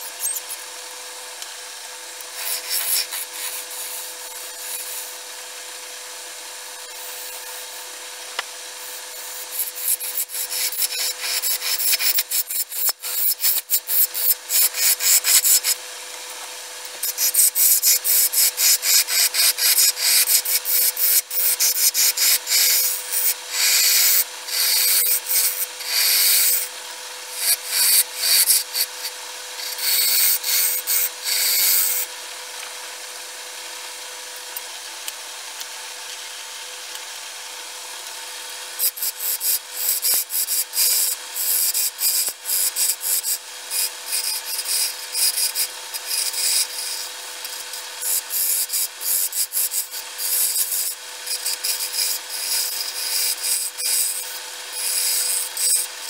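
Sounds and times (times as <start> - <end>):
gouge cutting spinning wood: 0.0 - 32.6, 37.7 - 56.0
wood lathe humming: 0.0 - 34.0, 36.3 - 56.0.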